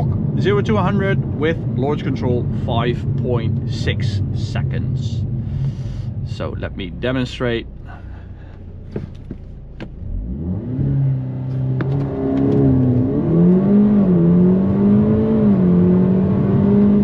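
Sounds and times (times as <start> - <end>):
car engine accelerating hard: 0.0 - 17.0
gearbox upshifts: 8.5 - 14.1.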